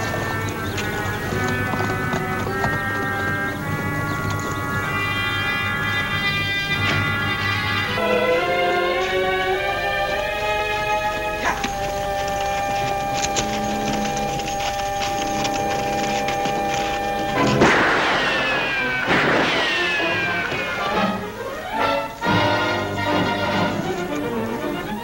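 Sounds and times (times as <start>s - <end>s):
orchestral music with held chords: 0.0s - 25.0s
ricochet whine: 13.3s - 23.3s
gunshot: 17.5s - 20.8s.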